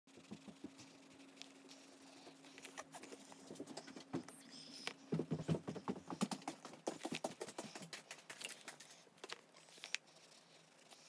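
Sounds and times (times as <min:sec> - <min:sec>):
faint low hum: 0:00.1 - 0:11.0.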